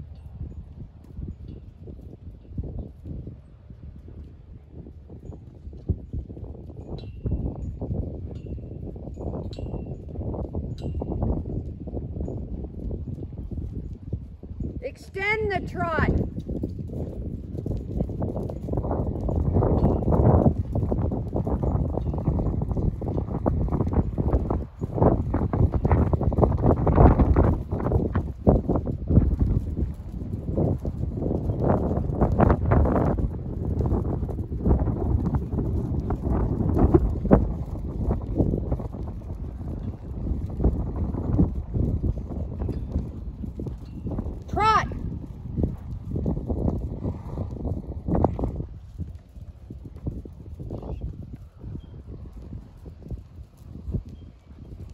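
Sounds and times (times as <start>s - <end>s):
horse hoofbeats on dirt: 0.0s - 54.9s.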